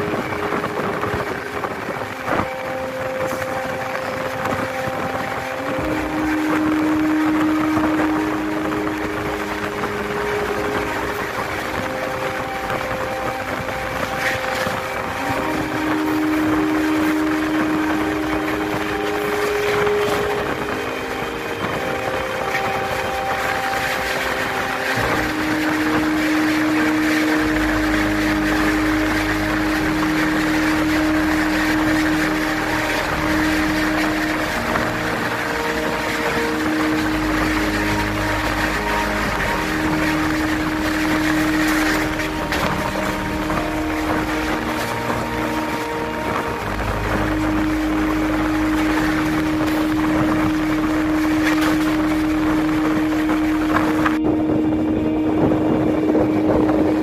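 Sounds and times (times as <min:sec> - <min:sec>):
passing goods train rumble: 0:00.0 - 0:57.0
wind rushing: 0:00.0 - 0:57.0.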